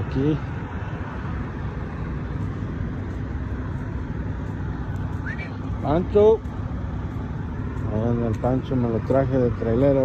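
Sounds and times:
truck engines and traffic rumble: 0.0 - 10.0.

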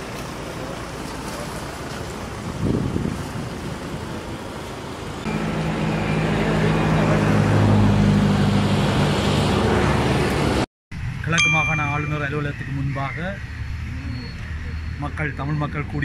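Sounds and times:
road traffic noise: 0.0 - 16.0
vehicle engine humming: 0.0 - 16.0.

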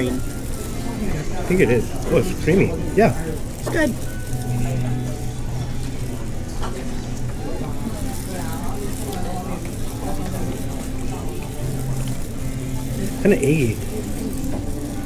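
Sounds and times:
background music: 0.0 - 15.0
distant chatter: 0.0 - 15.0.

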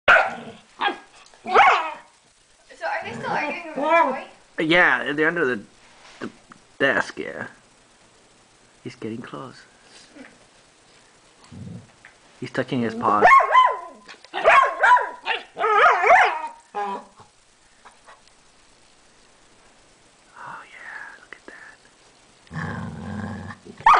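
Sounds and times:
dogs barking: 0.1 - 2.0, 13.2 - 17.0.

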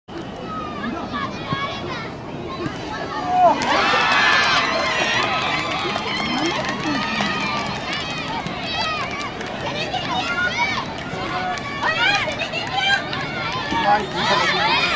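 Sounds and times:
crowd shouting and cheering: 0.2 - 14.9.

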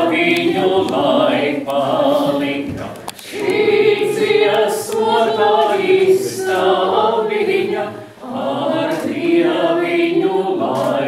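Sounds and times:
choir singing a cappella: 0.0 - 11.0.

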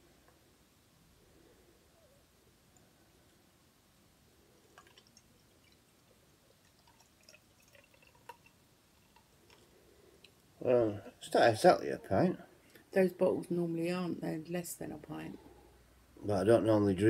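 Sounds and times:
small clicks and drips: 2.7 - 3.4, 4.6 - 10.6
beer pouring from bottle into glass: 4.7 - 9.4.

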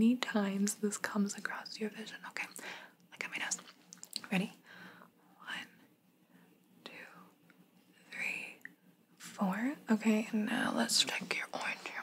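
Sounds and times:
woman whispering: 1.2 - 4.6, 5.4 - 5.8, 6.8 - 7.3, 8.0 - 8.6, 10.4 - 12.0.

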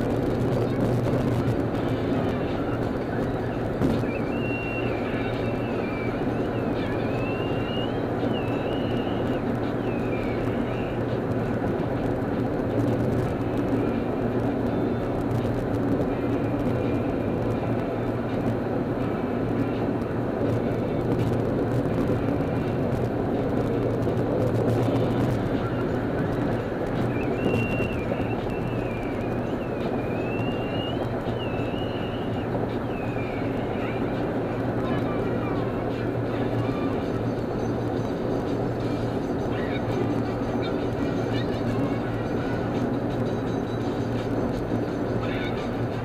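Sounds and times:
car road and engine noise: 0.0 - 46.0
wavering high-pitched tone: 27.0 - 34.1.

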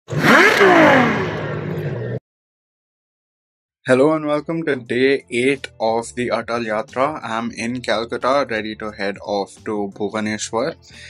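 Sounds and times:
engine revving and sweeping past: 0.1 - 2.2.

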